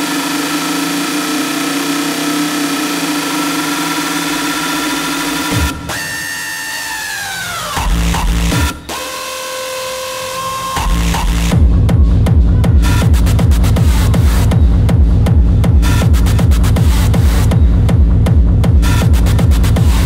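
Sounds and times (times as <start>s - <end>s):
electronic club music: 0.0s - 20.0s.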